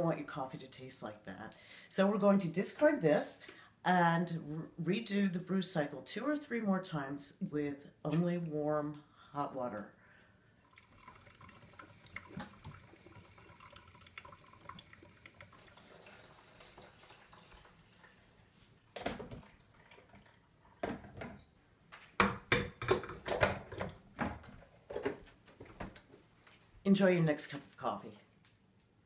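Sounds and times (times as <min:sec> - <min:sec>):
water pouring and splashing: 0:10.6 - 0:21.2.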